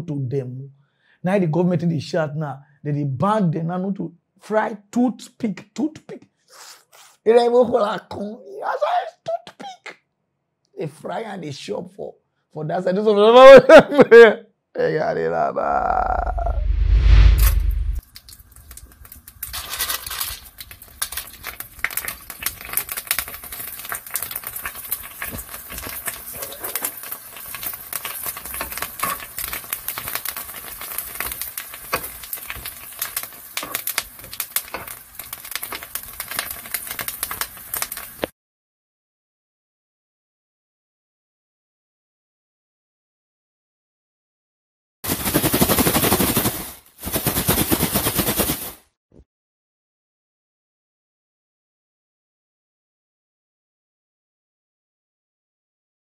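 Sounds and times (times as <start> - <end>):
oil crackling and popping: 18.0 - 38.3
plastic snack bag shaken: 45.1 - 48.9.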